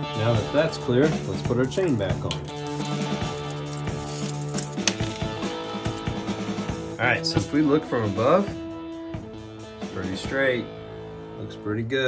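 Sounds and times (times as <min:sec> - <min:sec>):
background music with held notes: 0:00.0 - 0:12.0
bicycle chain clinking and rattling: 0:02.4 - 0:06.2.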